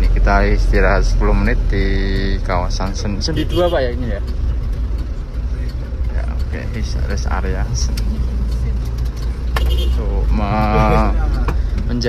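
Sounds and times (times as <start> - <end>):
man talking: 0.0 - 4.3, 5.5 - 8.0, 9.9 - 12.0
minibus engine rumbling: 0.0 - 12.0.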